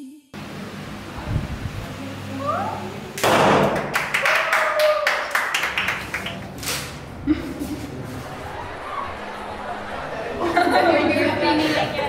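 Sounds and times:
drawn-out wailing tone: 8.1 - 11.4.

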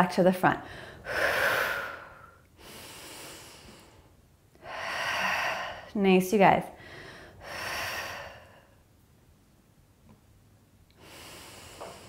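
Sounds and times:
woman breathing through mouth: 0.6 - 5.9, 6.8 - 8.8, 11.0 - 12.0.

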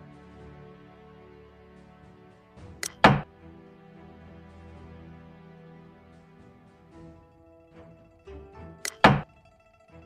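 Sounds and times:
soft instrumental music: 0.0 - 10.0
short click: 2.8 - 3.2, 8.8 - 9.2
game piece knock: 2.8 - 3.3, 8.8 - 9.3.

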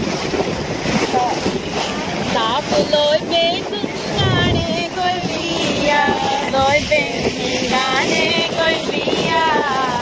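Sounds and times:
sea water rushing along hull: 0.0 - 10.0
wind buffeting microphone: 0.0 - 10.0.

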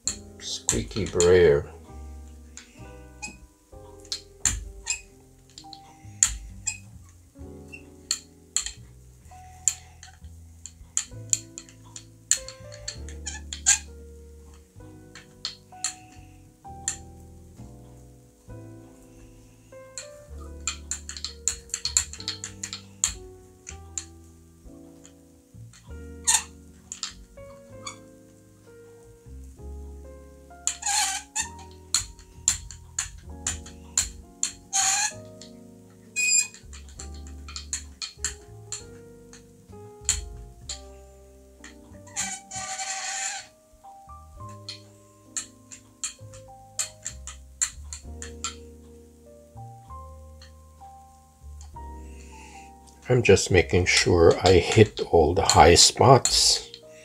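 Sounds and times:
background music: 0.0 - 57.0
brayer squeaking in paint: 2.6 - 7.0, 7.6 - 8.8, 10.9 - 17.0, 20.0 - 23.2, 26.0 - 28.1, 30.6 - 40.9, 41.6 - 43.6.

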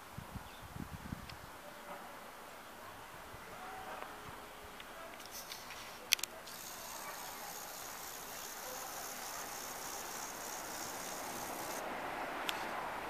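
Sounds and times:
faint outdoor background noise: 0.0 - 13.0
camcorder zoom motor hiss: 6.5 - 11.8.

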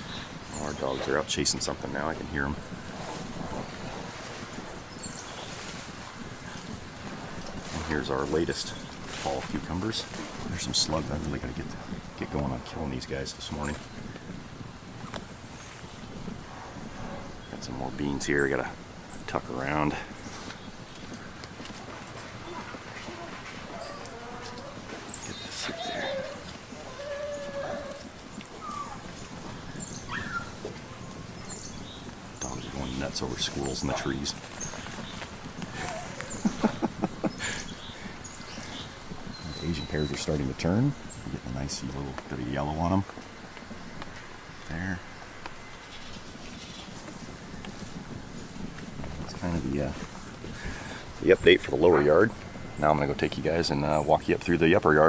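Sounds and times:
wind noise on microphone: 0.0 - 54.6
dogs barking and yelping: 22.2 - 31.5, 51.7 - 52.4.

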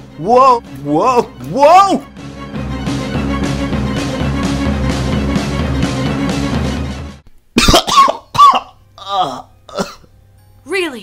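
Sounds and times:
background music: 0.0 - 11.0
person coughing and groaning: 7.6 - 10.1.

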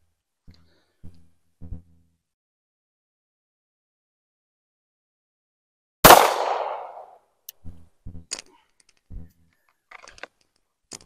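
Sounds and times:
pistol shot with echo: 6.0 - 7.1.

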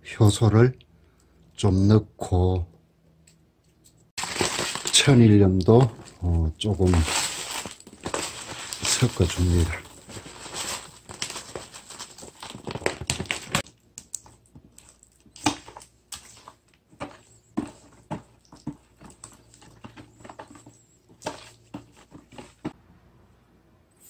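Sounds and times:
spatula scraping plastic bowl: 15.4 - 22.8.

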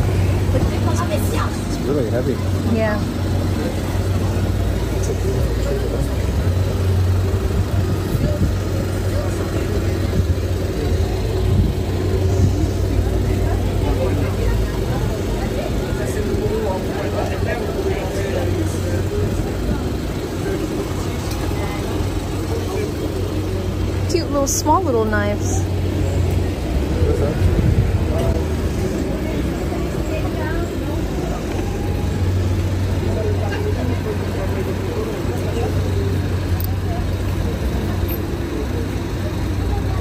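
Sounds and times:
steady low rumble: 0.0 - 33.9
indistinct chatter of people: 0.0 - 40.0.

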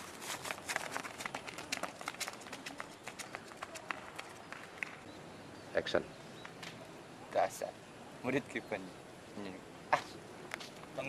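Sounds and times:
running footsteps on asphalt: 0.0 - 5.0.

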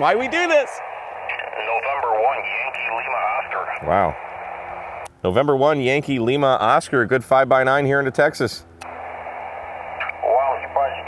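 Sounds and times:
radio-filtered voice: 0.0 - 5.0, 9.8 - 11.0
steady radio hum: 0.0 - 11.0.

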